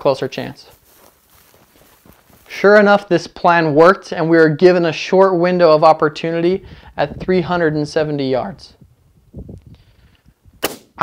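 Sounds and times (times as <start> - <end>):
rifle shot: 10.6 - 11.0.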